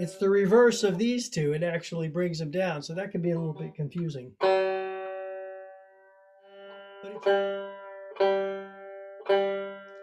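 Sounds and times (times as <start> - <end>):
banjo string plucked and ringing: 0.0 - 10.0.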